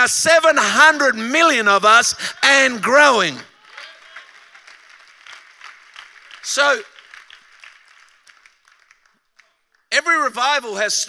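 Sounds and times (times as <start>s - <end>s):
faint audience applause: 3.5s - 10.2s.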